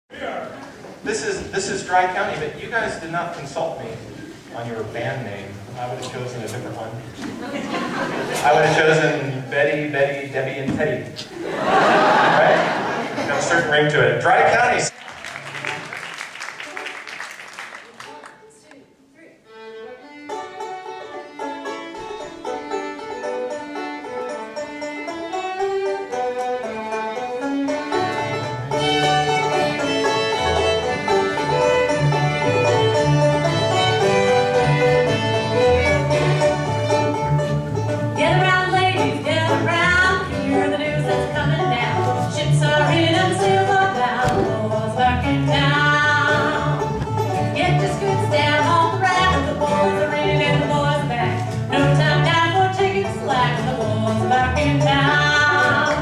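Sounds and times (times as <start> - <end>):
bluegrass band playing: 0.1 - 18.7, 19.4 - 56.0
upright bass: 27.8 - 56.0.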